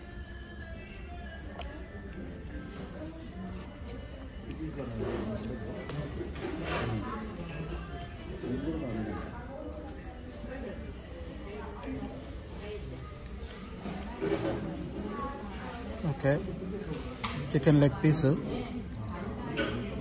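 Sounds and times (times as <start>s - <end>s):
diners chattering: 0.0s - 20.0s.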